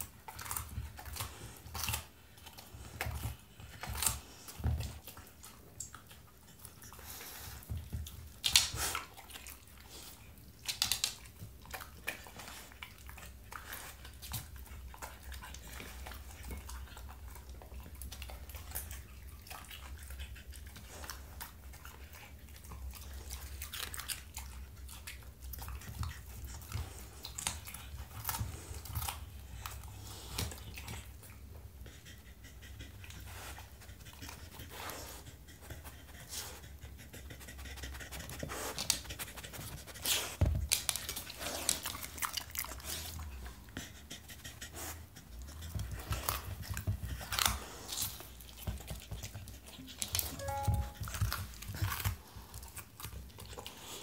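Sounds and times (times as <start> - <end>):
dog crunching and chewing: 0.0 - 54.0.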